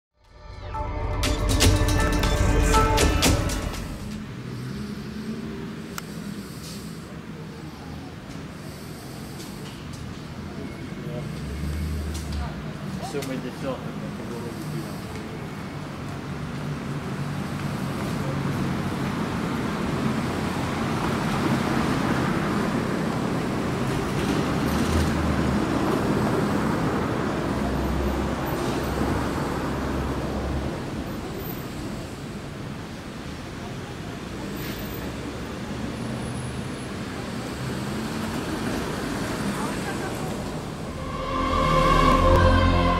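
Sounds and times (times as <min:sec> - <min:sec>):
deep traffic rumble: 0:01.2 - 0:42.9
passing vehicles hum: 0:01.4 - 0:42.9.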